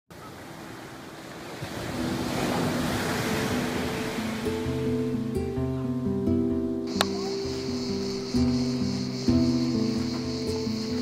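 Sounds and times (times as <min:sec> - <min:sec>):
ocean surf on beach: 0:00.1 - 0:06.2, 0:06.8 - 0:11.0
background music held notes: 0:01.6 - 0:11.0.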